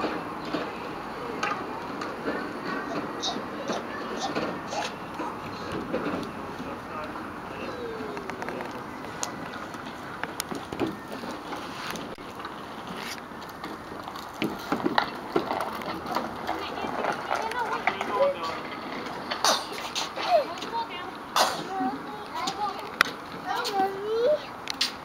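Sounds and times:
soft indistinct voices: 0.0s - 12.2s, 15.5s - 25.0s.

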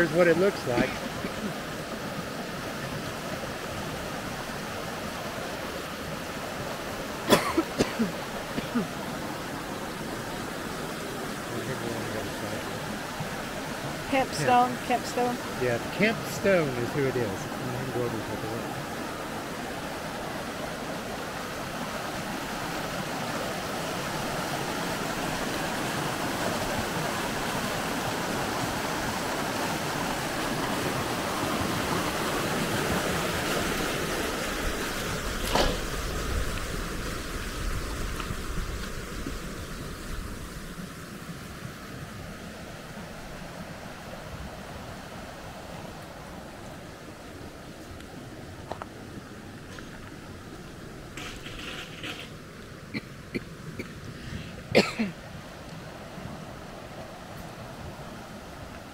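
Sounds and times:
creek water rushing over rocks: 0.0s - 58.9s.

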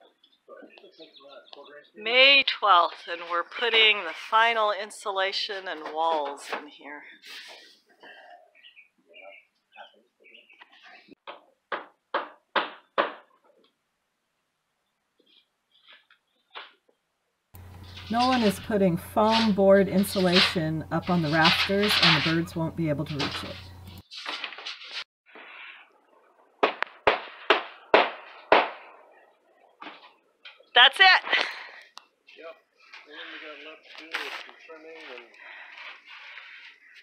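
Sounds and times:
hammering on wood: 11.3s - 13.3s, 26.6s - 28.8s.

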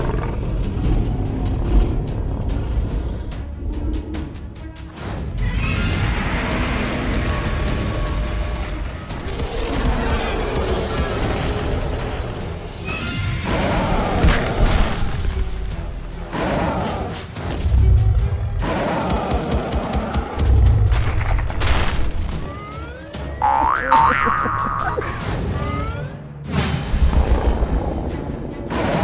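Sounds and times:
cartoon music: 23.4s - 25.4s.

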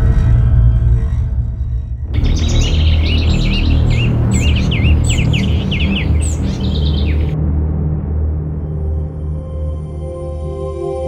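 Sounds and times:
low music drone: 0.0s - 11.0s
songbirds chirping: 2.2s - 7.4s.

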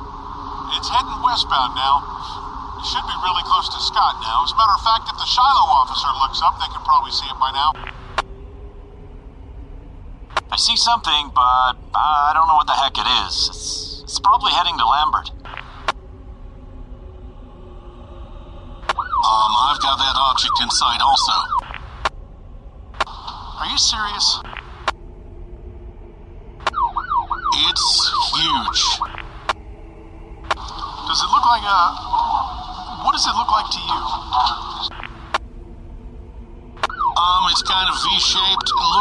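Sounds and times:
eerie background music: 0.0s - 39.0s
low steady rumble: 0.0s - 39.0s
police radio hiss: 30.5s - 35.4s.

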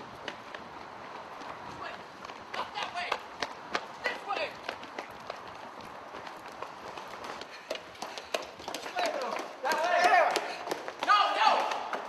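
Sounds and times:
people running footsteps: 0.0s - 12.0s
people shouting: 9.0s - 12.0s.

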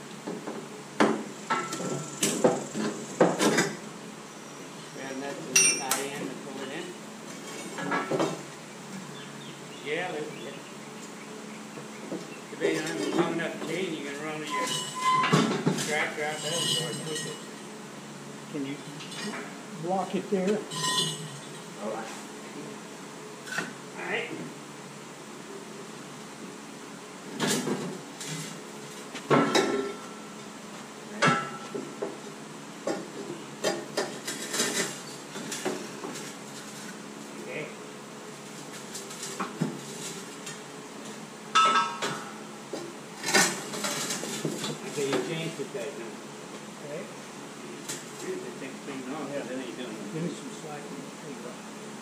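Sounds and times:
pry bar clinking against steel: 5.6s - 6.0s
sharp metallic clanks: 5.6s - 6.1s, 20.7s - 21.5s, 41.5s - 42.4s.

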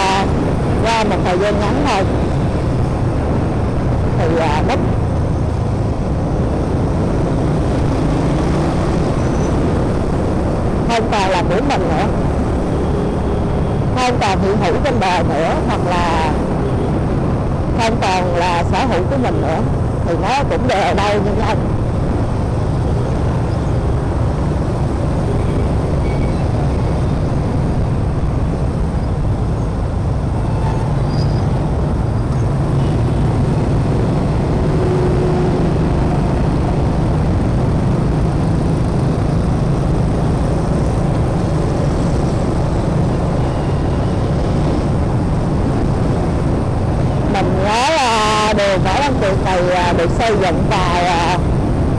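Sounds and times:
road noise: 0.0s - 51.9s
scooter engines rumbling: 0.0s - 51.9s.

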